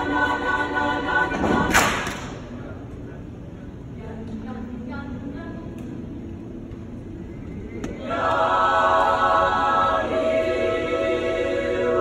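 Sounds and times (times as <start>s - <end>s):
choir singing sustained chord: 0.0s - 2.0s, 7.5s - 12.0s.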